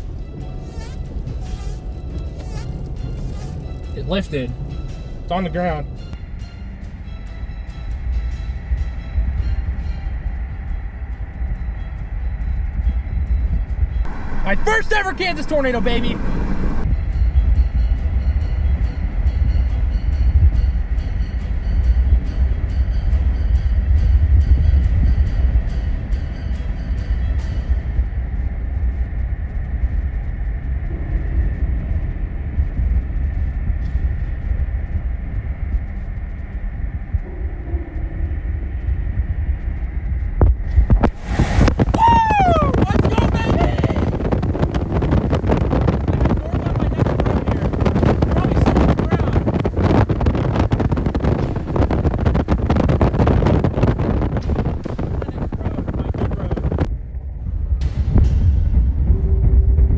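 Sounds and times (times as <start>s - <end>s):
wind and road noise rumble: 0.0s - 59.9s.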